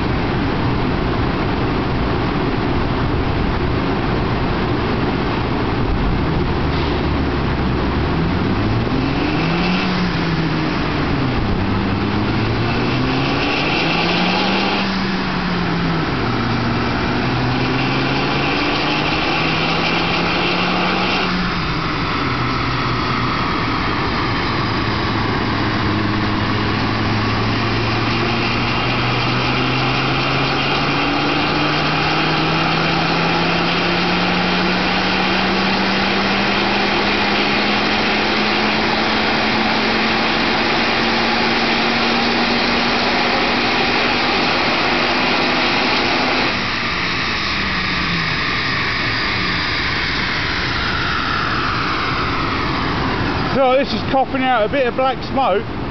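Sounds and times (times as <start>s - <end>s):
car engine revving under load: 0.0s - 55.9s.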